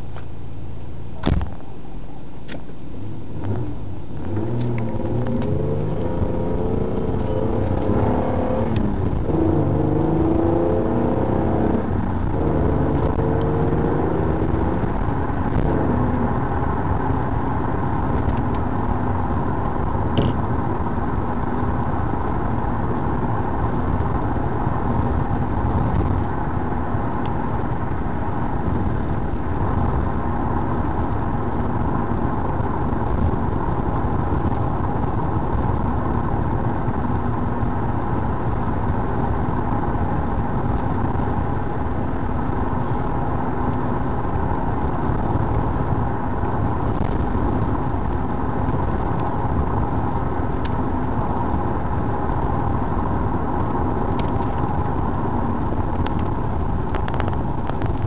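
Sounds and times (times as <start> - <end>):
road noise: 0.0 - 58.0
car engine accelerating: 2.9 - 58.0.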